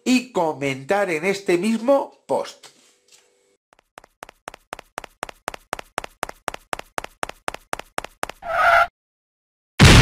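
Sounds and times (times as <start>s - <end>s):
cartoon footstep taps: 4.0s - 8.4s.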